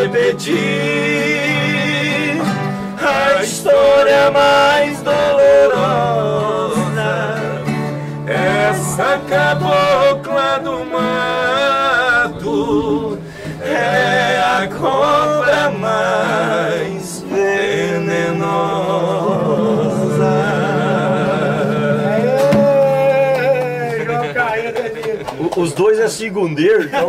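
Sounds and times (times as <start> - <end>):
ten-string guitar: 0.0 - 24.5
strummed acoustic guitar: 0.0 - 24.8
two men singing together: 0.0 - 24.8.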